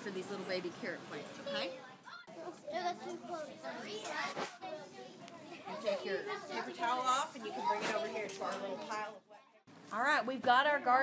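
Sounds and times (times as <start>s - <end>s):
children chattering: 1.1s - 9.7s.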